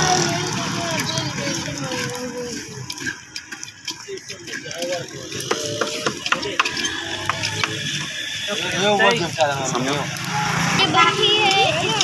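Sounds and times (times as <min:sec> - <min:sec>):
sharp irregular clicks: 0:00.0 - 0:12.0.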